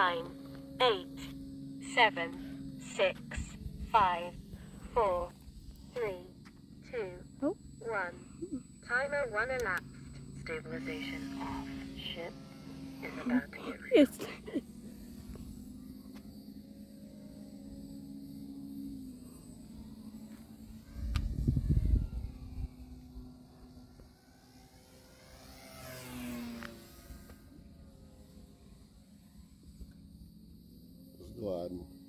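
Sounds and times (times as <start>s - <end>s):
steady low hum: 0.0s - 32.0s
wind buffeting microphone: 20.9s - 23.0s.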